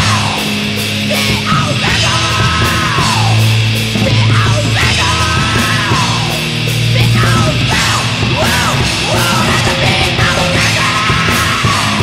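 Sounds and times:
bass guitar: 0:00.0 - 0:12.0
distorted guitar: 0:00.0 - 0:12.0
fast drums with cymbals: 0:00.0 - 0:12.0
person yelling vocals: 0:00.0 - 0:12.0.

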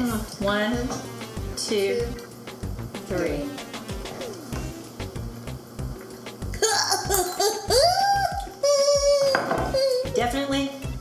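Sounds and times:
background music with beat: 0:00.8 - 0:11.0.

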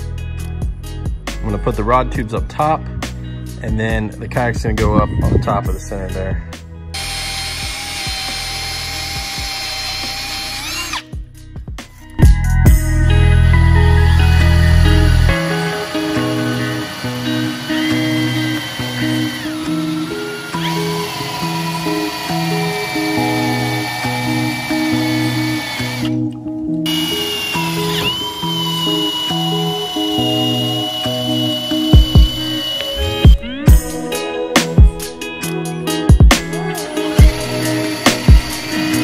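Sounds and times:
background music with bass line: 0:00.0 - 0:39.0
cordless drill whining: 0:07.0 - 0:11.2, 0:13.6 - 0:34.2, 0:36.5 - 0:39.0.

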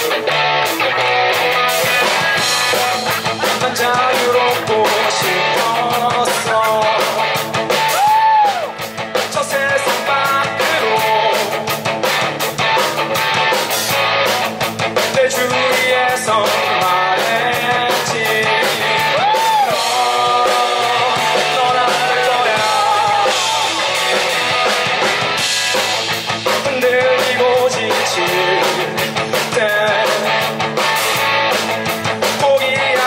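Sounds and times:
drum kit: 0:00.0 - 0:33.0
electric bass guitar: 0:00.0 - 0:33.0
electric guitar: 0:00.0 - 0:33.0
man singing into a microphone: 0:03.4 - 0:07.4, 0:09.2 - 0:11.7, 0:15.0 - 0:24.4, 0:26.4 - 0:30.6, 0:32.2 - 0:33.0.

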